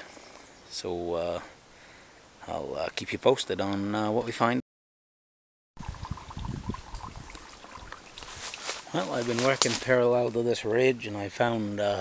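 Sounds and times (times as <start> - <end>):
spring water trickling: 5.8 - 9.9.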